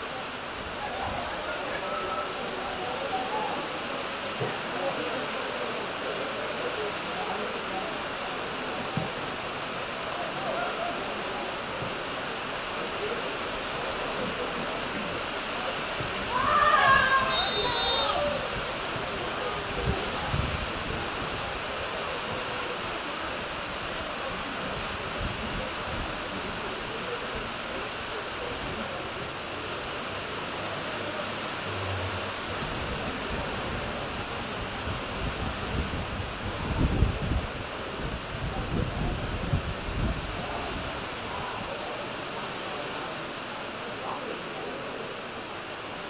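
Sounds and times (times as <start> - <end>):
faint distant voices: 0.0 - 46.0
steady outdoor hiss: 0.0 - 46.0
wind buffeting microphone: 19.7 - 21.6, 32.4 - 41.0.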